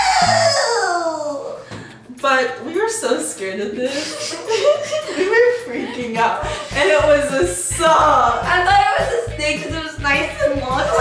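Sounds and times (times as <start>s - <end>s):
girl squealing: 0.0s - 1.6s.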